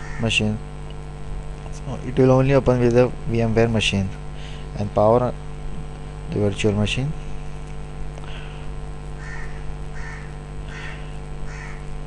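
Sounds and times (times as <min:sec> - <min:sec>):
electrical hum: 0:00.0 - 0:12.0
bird harsh calls: 0:09.2 - 0:11.9.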